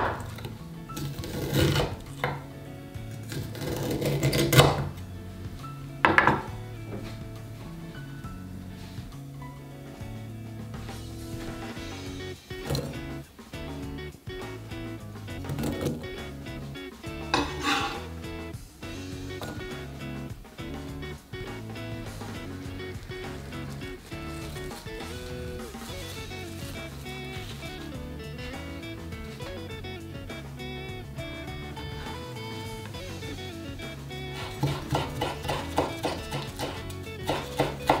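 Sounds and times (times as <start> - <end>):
background music: 0.0 - 38.0
knife slicing corn on wooden board: 34.4 - 38.0.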